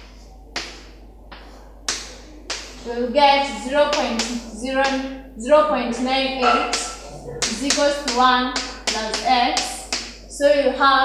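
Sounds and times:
chalk tapping on chalkboard: 0.0s - 2.9s, 3.9s - 5.0s, 6.4s - 10.2s.

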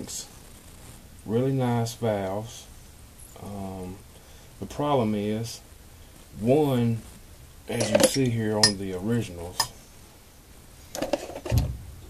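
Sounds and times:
low thump: 11.5s - 12.0s.

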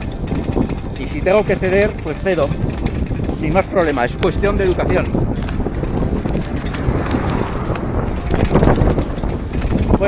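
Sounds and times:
handbike rumbling and rattling: 0.0s - 10.0s
wind buffeting microphone: 0.0s - 10.0s.

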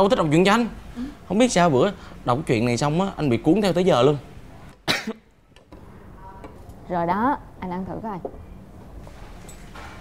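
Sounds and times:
cough: 4.8s - 5.3s.

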